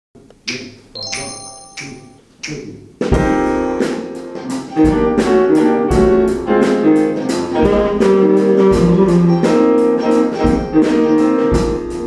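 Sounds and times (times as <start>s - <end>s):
piano chords: 1.0s - 2.2s.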